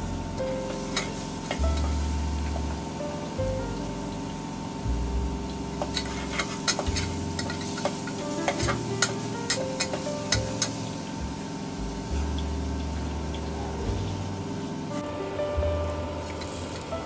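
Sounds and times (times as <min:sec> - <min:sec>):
frying sizzle: 0:00.0 - 0:17.0
metal ladle scraping a pot: 0:05.8 - 0:10.0.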